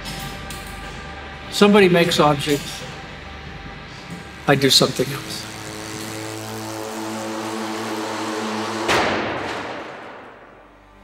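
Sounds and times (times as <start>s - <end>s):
small motor humming: 2.3s - 8.9s
sudden loud noise: 4.0s - 11.0s.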